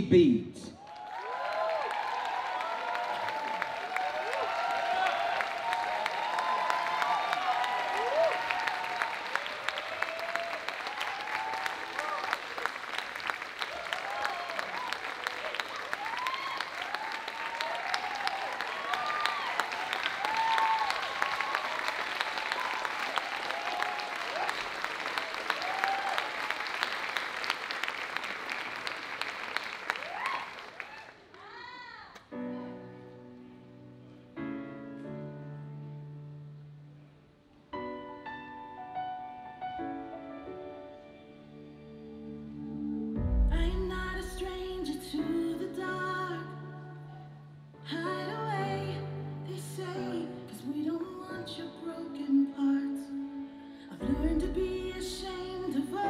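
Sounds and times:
audience cheering and whooping: 0.8 - 32.1
audience clapping: 0.8 - 32.3.

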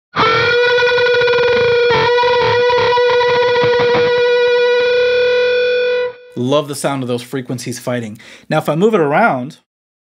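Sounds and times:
distorted electric guitar bend: 0.1 - 6.4.

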